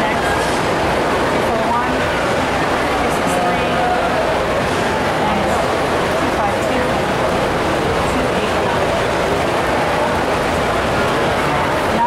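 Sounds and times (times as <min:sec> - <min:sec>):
constant even rush: 0:00.0 - 0:12.0
faint indistinct crowd voices: 0:00.0 - 0:12.0.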